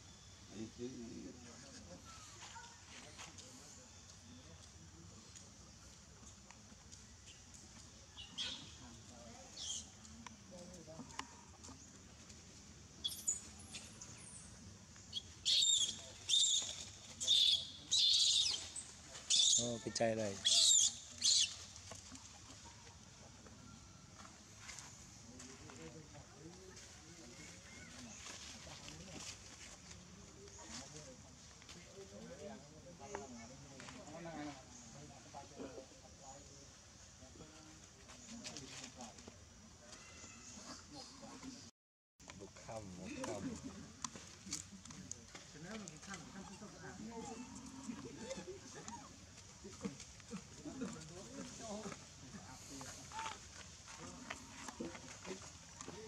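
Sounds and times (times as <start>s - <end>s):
baby monkey squealing: 15.4s - 18.6s, 20.4s - 21.6s.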